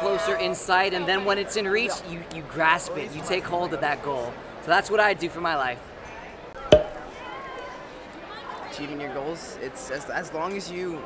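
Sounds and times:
faint chatter in a large hall: 0.0s - 11.0s
sharp ringing knock: 6.7s - 7.1s.

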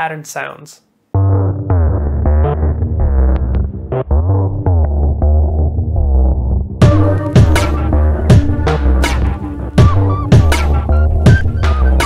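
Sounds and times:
deep looping bass line: 1.2s - 12.0s.

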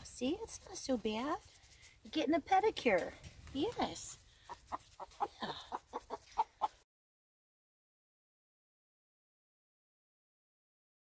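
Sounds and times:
hen clucking: 4.4s - 6.8s.

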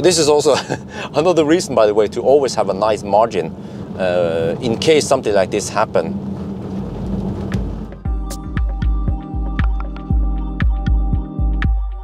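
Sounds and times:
tyre and road noise: 0.0s - 8.1s.

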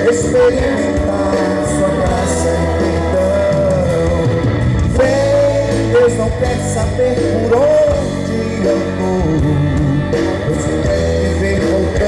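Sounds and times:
live band with electric guitar: 0.0s - 12.0s.

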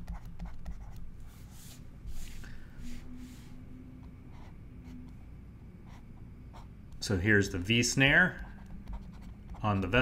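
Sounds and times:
stylus scratching on drawing tablet: 0.0s - 5.2s, 8.3s - 10.0s.

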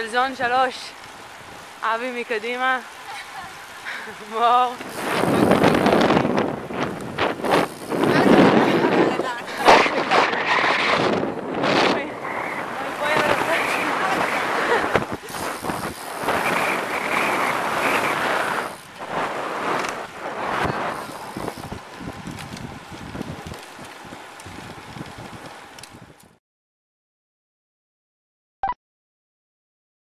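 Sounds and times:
wind rushing over microphone: 3.8s - 26.4s.

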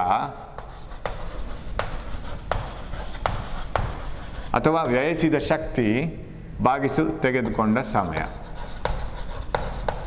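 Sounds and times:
chalk tapping and scraping: 0.0s - 5.2s, 7.2s - 10.0s.

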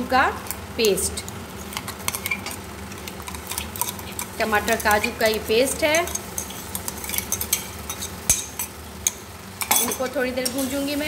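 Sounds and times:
light sizzling: 0.0s - 11.0s.

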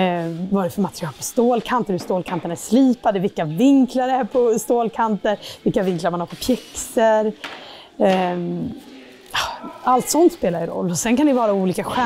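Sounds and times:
woman speaking: 0.0s - 7.4s, 8.0s - 12.0s.

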